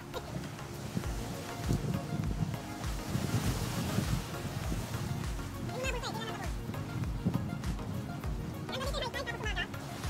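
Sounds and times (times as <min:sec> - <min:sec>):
sea waves: 0:00.0 - 0:10.0
wind buffeting microphone: 0:00.0 - 0:10.0.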